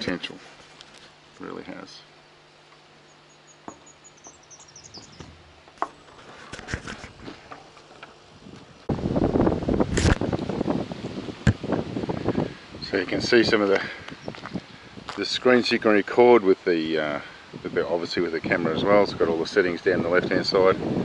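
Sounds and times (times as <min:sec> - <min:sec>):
rustling: 0:00.4 - 0:01.4, 0:04.9 - 0:08.9
bird twitter: 0:03.0 - 0:06.2
sharp knocks: 0:03.6 - 0:03.9, 0:04.9 - 0:07.6
wind noise on microphone: 0:04.5 - 0:07.5, 0:08.3 - 0:15.5, 0:17.1 - 0:21.0.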